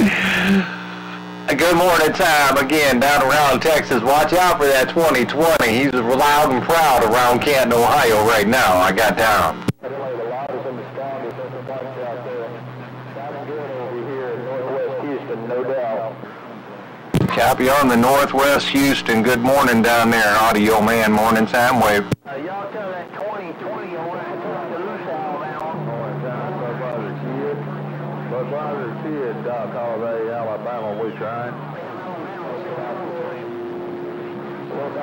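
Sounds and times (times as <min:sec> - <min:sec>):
faint muffled radio voice: 0:00.0 - 0:16.6, 0:17.2 - 0:35.0
steady low hum: 0:00.0 - 0:22.2, 0:23.6 - 0:35.0
radio hiss: 0:00.0 - 0:35.0.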